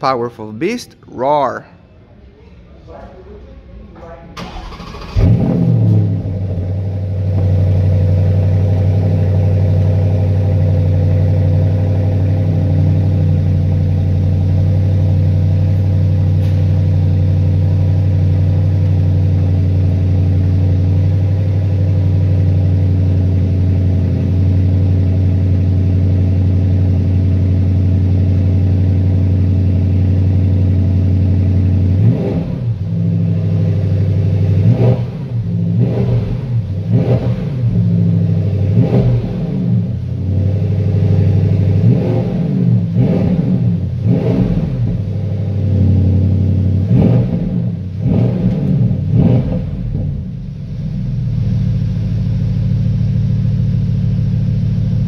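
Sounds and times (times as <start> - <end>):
car engine idling: 4.0 - 55.0
car engine revving: 4.4 - 55.0.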